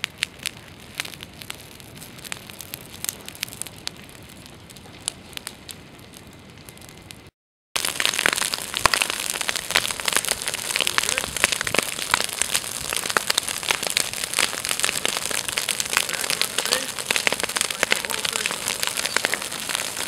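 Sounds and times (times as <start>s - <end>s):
dry brush crackling fire: 0.0s - 20.0s
fire popping and snapping: 0.0s - 20.0s
fire steady hiss: 0.0s - 20.0s.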